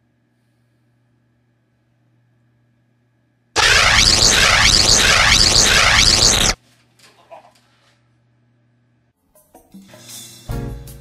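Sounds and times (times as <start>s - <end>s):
electric shock zap: 3.6s - 6.6s.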